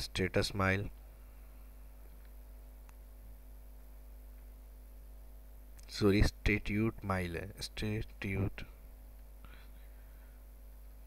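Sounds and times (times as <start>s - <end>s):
steady electrical hum: 0.0s - 11.0s
faint breathy sound: 9.4s - 10.6s.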